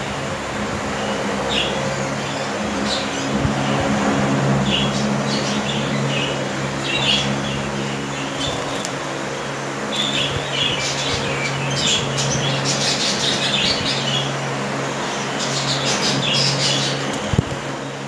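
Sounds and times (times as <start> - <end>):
steady low hum: 0.0 - 18.0
budgerigars chirping: 9.9 - 14.3, 15.4 - 17.3.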